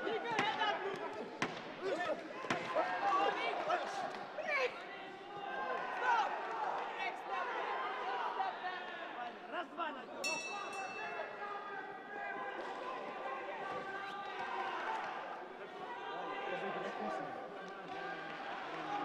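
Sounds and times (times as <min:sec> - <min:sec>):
boxing ring bell: 0:10.2 - 0:11.4.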